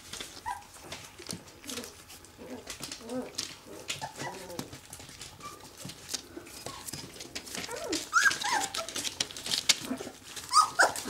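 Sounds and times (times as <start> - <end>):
newspaper crinkling underfoot: 0.0 - 11.0
puppy whimpering: 0.4 - 0.8, 1.6 - 11.0.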